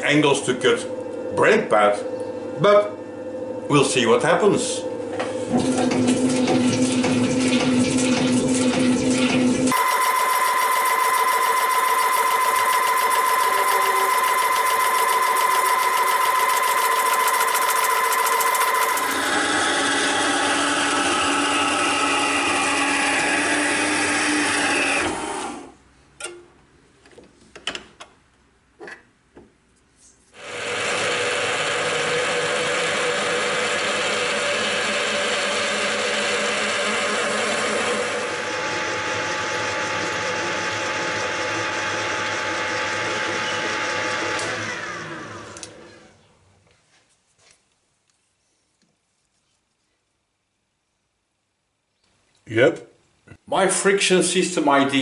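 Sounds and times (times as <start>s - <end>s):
machine falling whine: 9.6s - 19.3s
lathe chuck spinning: 9.7s - 23.3s, 30.4s - 45.8s.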